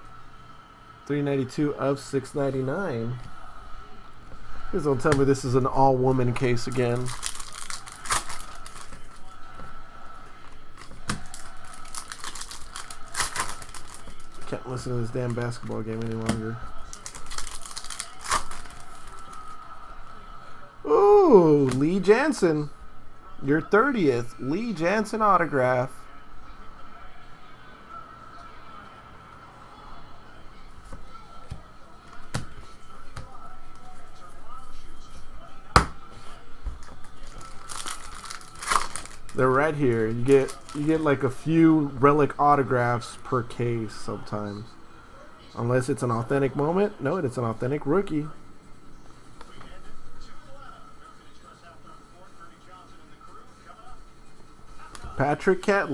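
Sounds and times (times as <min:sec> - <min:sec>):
foil wrapper crinkling: 0:06.4 - 0:09.3, 0:10.5 - 0:19.6, 0:37.0 - 0:41.3
foil card pack tearing open: 0:06.7 - 0:09.0, 0:10.8 - 0:14.5, 0:16.1 - 0:19.6, 0:37.2 - 0:41.1.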